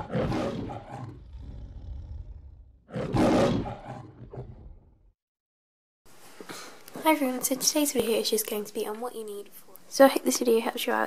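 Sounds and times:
lion roaring: 0.0s - 5.0s.

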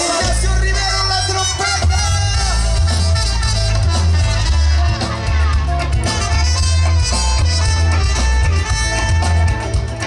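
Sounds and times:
congas: 0.0s - 10.0s
drum kit: 0.0s - 10.0s
electric guitars: 0.0s - 10.0s
heavy bass line: 0.0s - 10.0s.

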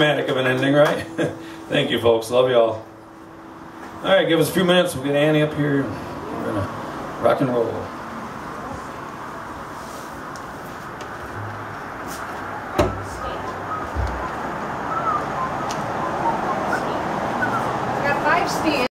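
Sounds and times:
faint voices: 12.7s - 18.9s
guitar knocking on stand: 12.8s - 13.2s
low thump: 12.8s - 13.2s.

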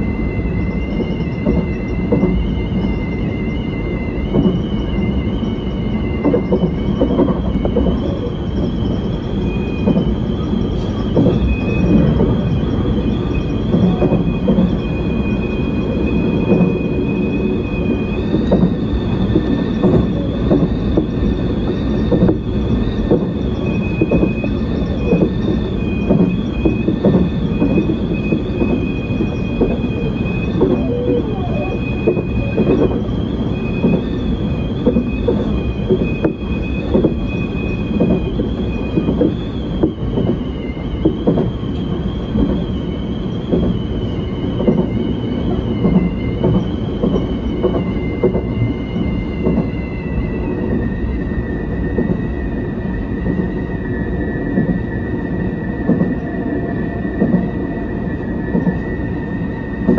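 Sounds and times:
wheels knocking on track: 0.0s - 59.1s
high wavering whine: 0.0s - 59.9s
train rumble: 0.0s - 59.9s.

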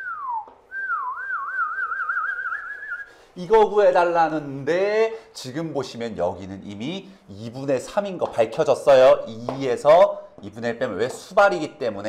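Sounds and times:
person whistling wavering note: 0.0s - 3.2s.

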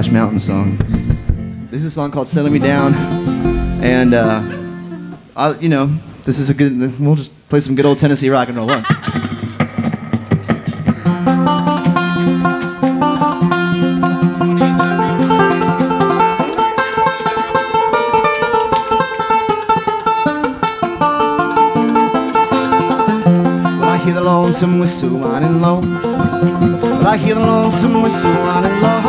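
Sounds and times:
string band playing folk-rock: 0.0s - 5.4s, 9.0s - 29.0s
person laughing: 4.1s - 5.2s, 7.9s - 10.0s.

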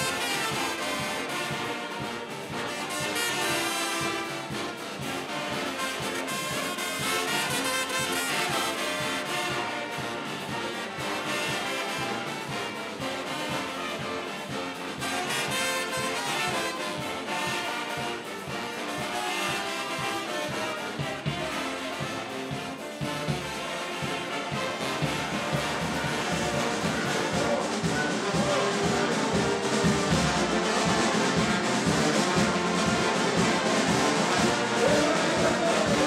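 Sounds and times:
brass band playing: 0.0s - 36.0s
steady low beat: 22.2s - 36.0s.

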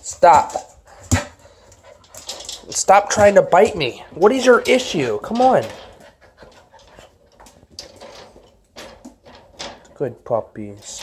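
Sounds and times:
puppies panting: 0.6s - 8.7s.

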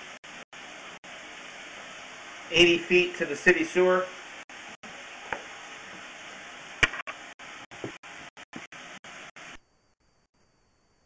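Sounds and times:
steady hiss: 0.0s - 9.6s.

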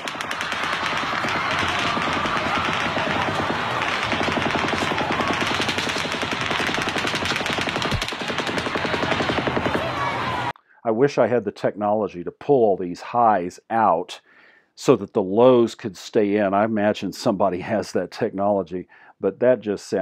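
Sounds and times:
rapid gunshots: 0.0s - 10.5s.

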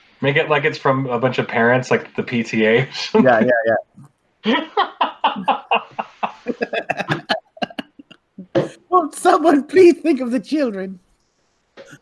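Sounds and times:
man laughing hard: 4.5s - 8.1s.

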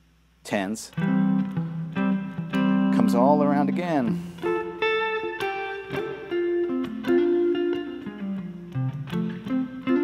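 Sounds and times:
electric guitar melodic phrase: 0.6s - 10.0s.

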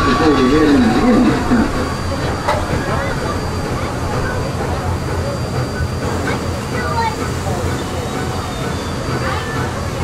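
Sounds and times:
passengers chattering: 0.0s - 10.0s
riverboat low rumble: 0.0s - 10.0s.

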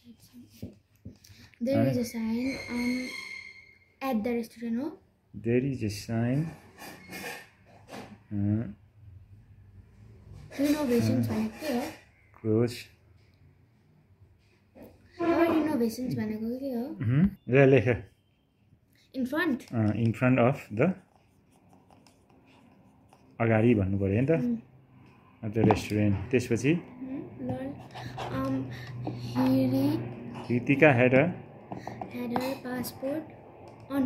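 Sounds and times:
pen scratching on paper: 21.0s - 23.4s, 27.4s - 30.7s.

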